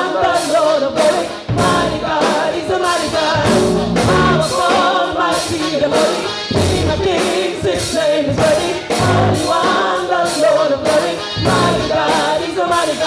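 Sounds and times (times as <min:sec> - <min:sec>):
band with bass drums and keyboard: 0:00.0 - 0:13.0
gospel choir singing: 0:00.0 - 0:13.0.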